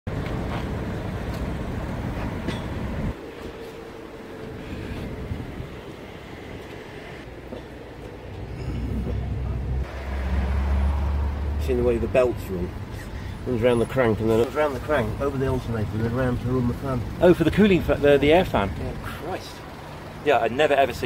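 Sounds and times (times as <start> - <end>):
vehicle engine rumble: 0.1 - 21.0.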